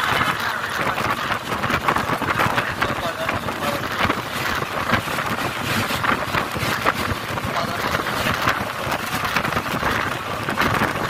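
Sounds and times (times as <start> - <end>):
vehicle road and wind noise: 0.0 - 11.0.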